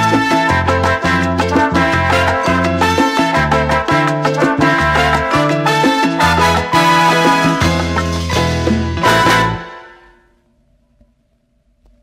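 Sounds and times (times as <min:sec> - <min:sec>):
salsa song: 0:00.0 - 0:10.3
faint hum and hiss: 0:10.1 - 0:12.0.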